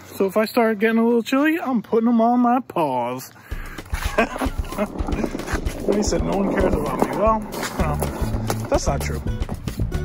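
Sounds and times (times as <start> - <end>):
skateboard rolling on asphalt: 3.8 - 10.0.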